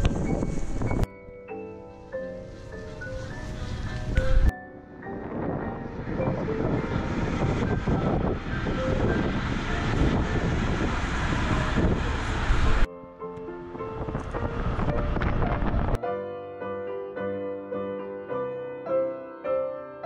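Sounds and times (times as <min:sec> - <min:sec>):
wind rushing on microphone: 0:00.0 - 0:01.1, 0:02.3 - 0:12.9, 0:13.6 - 0:16.0
background music: 0:00.2 - 0:12.0.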